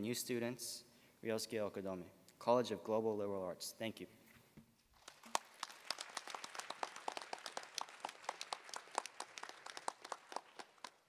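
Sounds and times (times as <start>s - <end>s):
audience applauding: 5.0s - 11.0s.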